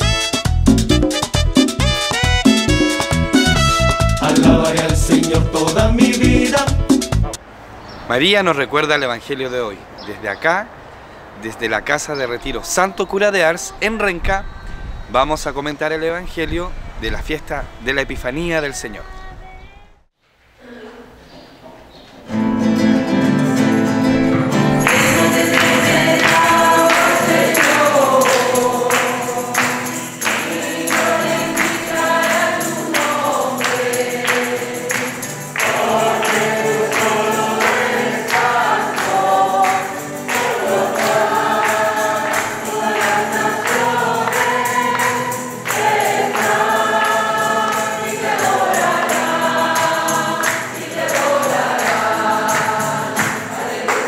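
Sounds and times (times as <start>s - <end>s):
hands clapping in rhythm: 0.0s - 7.3s, 24.8s - 54.0s
congregation singing a hymn: 4.2s - 6.8s, 23.6s - 54.0s.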